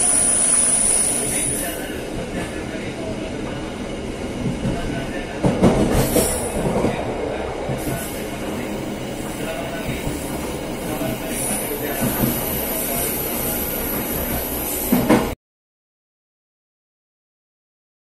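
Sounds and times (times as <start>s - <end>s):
train rolling rumble: 0.0s - 15.4s.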